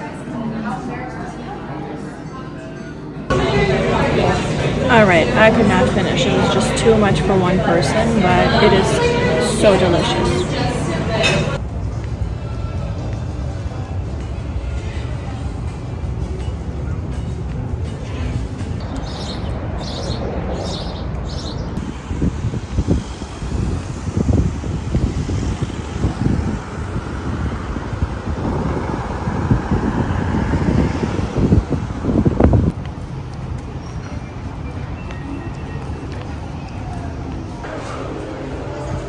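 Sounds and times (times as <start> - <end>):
rumble of traffic: 3.2 - 39.0.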